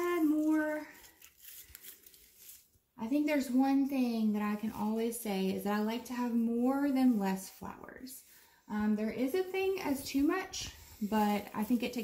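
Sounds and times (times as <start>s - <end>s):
flowers and leaves rustling: 0.0s - 2.8s, 4.4s - 12.0s.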